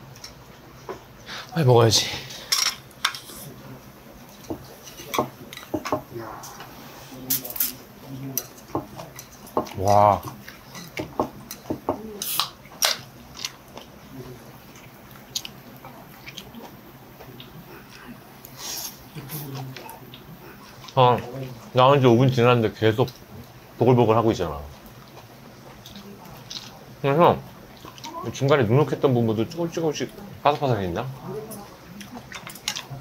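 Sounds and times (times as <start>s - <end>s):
chewing: 2.7s - 21.8s, 24.6s - 33.0s.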